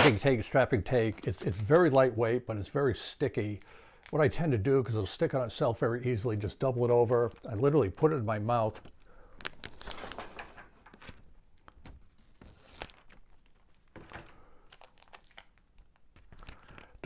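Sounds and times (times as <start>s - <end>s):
packing tape crinkling: 8.6s - 17.0s.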